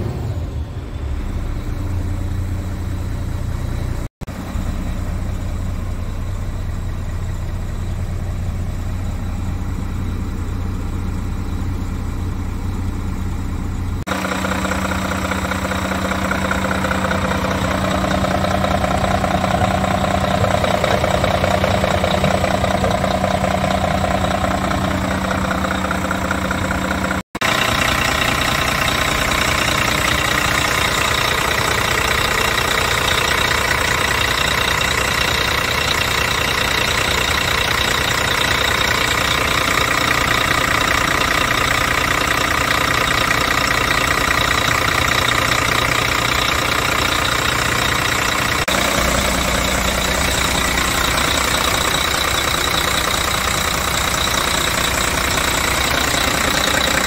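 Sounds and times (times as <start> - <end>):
diesel engine idling: 0.0 - 57.0.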